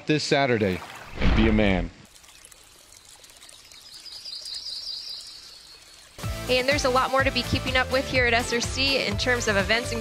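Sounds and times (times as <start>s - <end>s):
running water: 0.2s - 10.0s
bird trilling: 3.7s - 6.1s.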